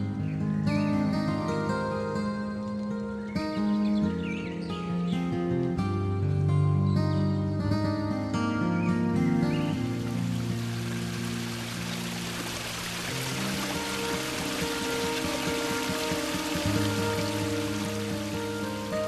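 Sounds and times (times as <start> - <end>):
soft background music: 0.0 - 19.0
fountain water splashing into basin: 9.8 - 19.0.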